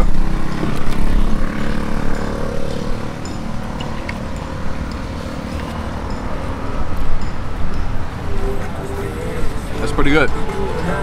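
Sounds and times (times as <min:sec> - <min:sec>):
vehicle engine rumble: 0:00.0 - 0:11.0.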